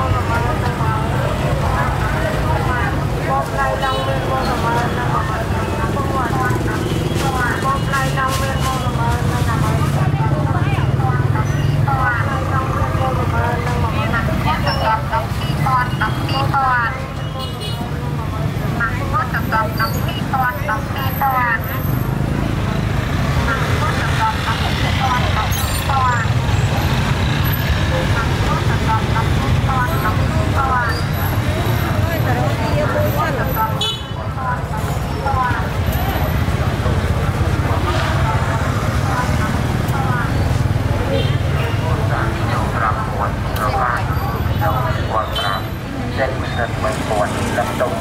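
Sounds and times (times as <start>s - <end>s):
many voices talking: 0.0s - 48.0s
motorbike engines running: 0.0s - 48.0s.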